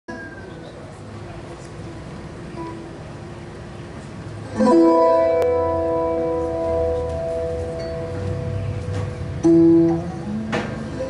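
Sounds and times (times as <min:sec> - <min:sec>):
twelve-string guitar chord strummed: 0:04.5 - 0:11.0.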